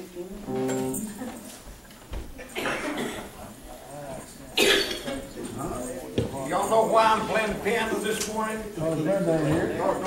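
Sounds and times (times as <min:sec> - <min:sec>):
loud cough: 0:02.4 - 0:03.3, 0:04.6 - 0:05.0.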